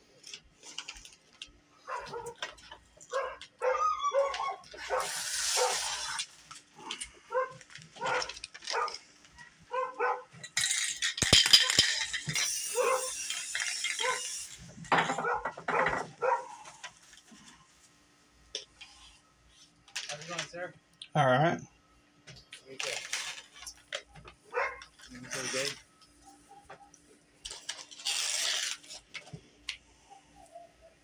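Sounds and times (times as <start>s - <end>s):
spray paint can hissing: 4.9s - 6.3s.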